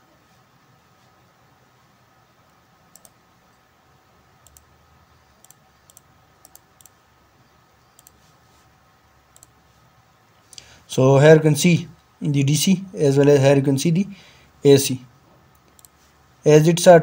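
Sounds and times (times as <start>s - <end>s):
faint steady hum: 0.0s - 17.0s
computer mouse clicking: 2.5s - 3.2s, 4.4s - 4.7s, 5.4s - 7.0s, 7.9s - 8.3s, 9.3s - 9.6s, 15.5s - 16.0s.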